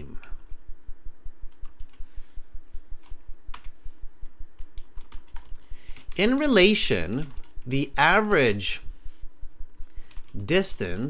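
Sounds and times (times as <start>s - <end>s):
keyboard typing: 1.5s - 2.0s, 2.7s - 7.9s, 9.8s - 10.6s.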